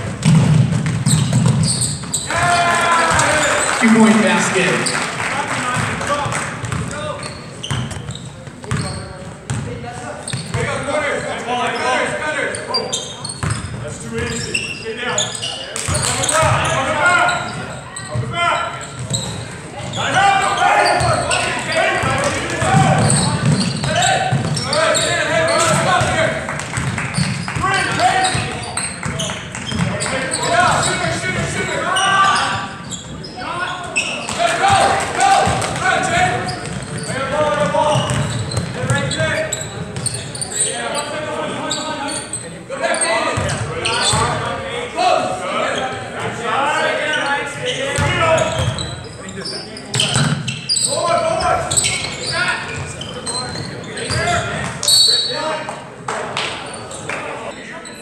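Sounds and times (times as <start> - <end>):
basketball bouncing on hardwood: 38.0 - 39.0.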